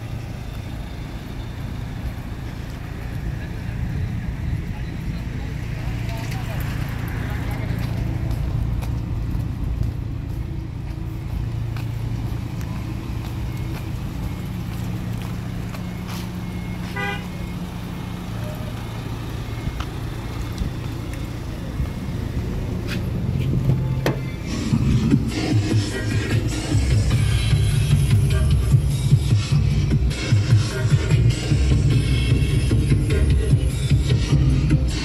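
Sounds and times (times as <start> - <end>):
vehicle engine idling: 0.0 - 35.0.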